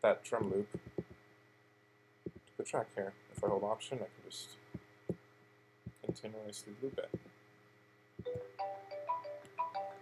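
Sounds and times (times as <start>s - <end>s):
soft thumps: 0.4s - 1.2s.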